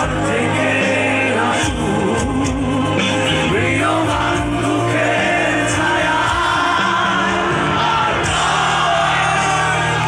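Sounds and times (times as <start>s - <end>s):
live band with sung vocals: 0.0s - 10.0s.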